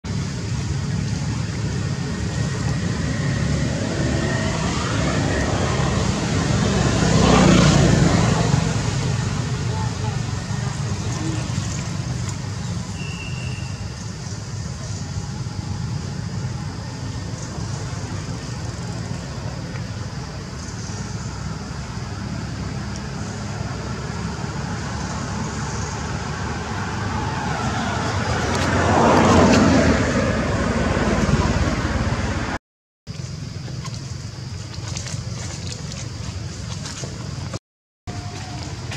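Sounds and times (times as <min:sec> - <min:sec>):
road traffic rumble: 0:00.0 - 0:38.9
vehicles passing: 0:00.0 - 0:38.9.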